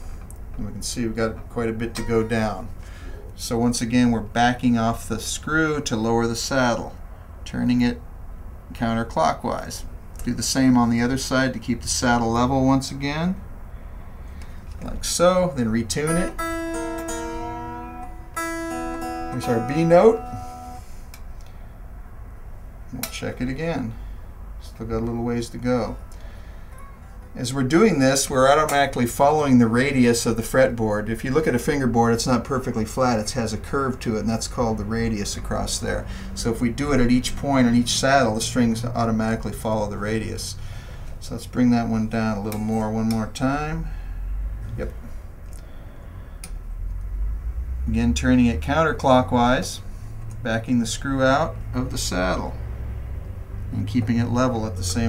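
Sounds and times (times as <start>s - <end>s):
steady low hum: 0.0s - 55.0s
man speaking: 0.6s - 8.0s, 14.8s - 16.4s, 19.3s - 20.6s, 24.6s - 26.0s, 27.3s - 40.6s, 50.4s - 52.6s, 53.7s - 55.0s
electric guitar string ringing: 15.9s - 21.0s
faint click: 46.4s - 47.1s.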